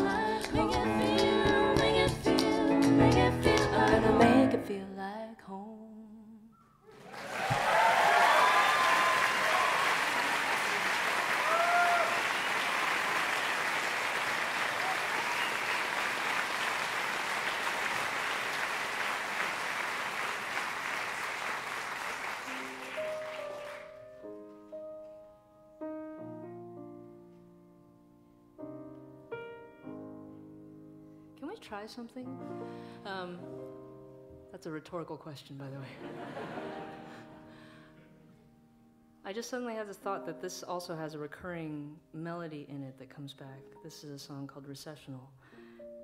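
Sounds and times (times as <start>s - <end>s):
piano chords: 0.0s - 4.8s, 21.7s - 35.1s, 36.0s - 41.7s
person singing: 0.0s - 6.5s
audience whoops: 6.9s - 21.1s
audience applause: 6.9s - 24.0s.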